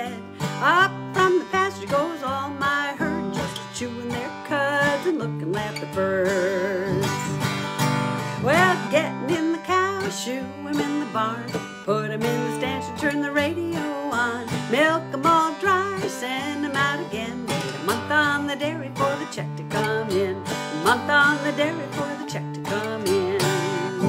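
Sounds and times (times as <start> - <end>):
acoustic guitar: 0.0 - 24.0
woman singing country song: 0.0 - 24.0.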